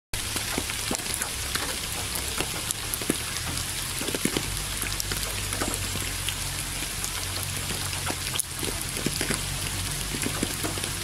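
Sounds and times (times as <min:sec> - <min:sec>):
rain hissing: 0:00.2 - 0:11.0
raindrops hitting close by: 0:00.2 - 0:11.0.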